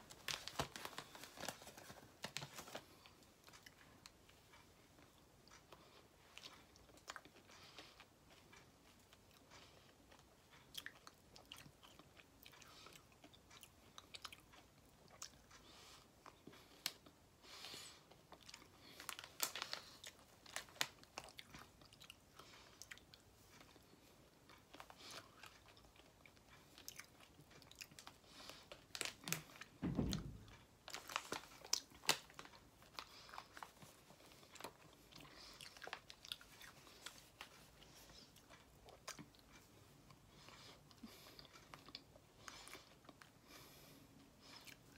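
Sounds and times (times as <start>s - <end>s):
dull low thump: 29.8s - 30.6s.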